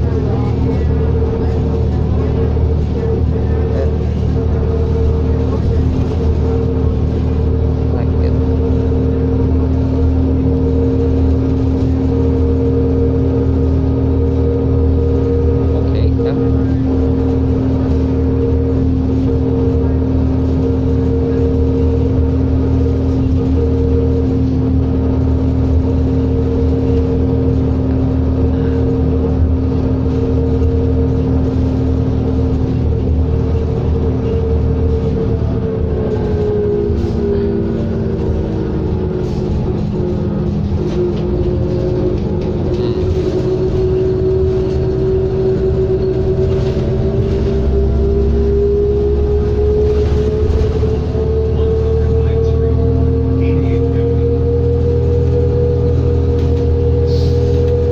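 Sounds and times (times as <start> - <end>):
bus engine drone: 0.0 - 57.9.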